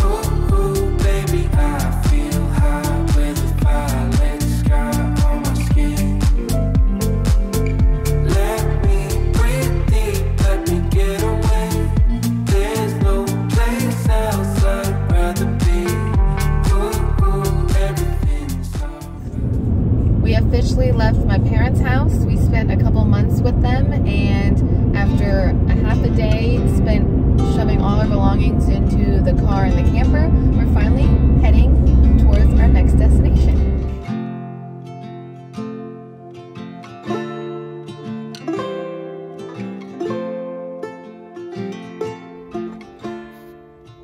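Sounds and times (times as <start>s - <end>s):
plucked-string background music: 0.0s - 19.3s, 20.3s - 44.0s
road rumble inside a car: 19.2s - 34.0s
people talking: 20.2s - 33.9s.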